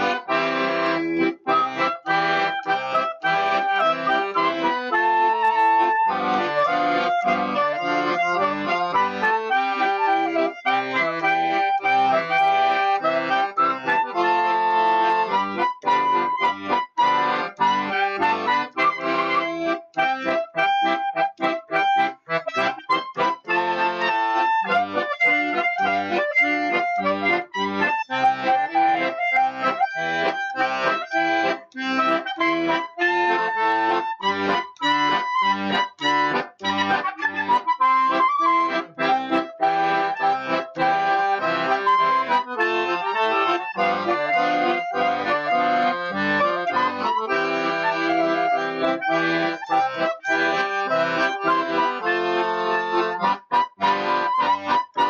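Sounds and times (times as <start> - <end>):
accordion chords: 0.0 - 55.0
clarinet melody: 0.0 - 55.0.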